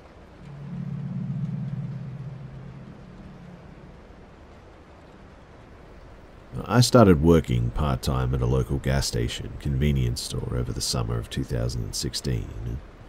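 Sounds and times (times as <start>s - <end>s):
low dark ambient drone: 0.0s - 6.8s
faint hiss: 0.0s - 13.0s.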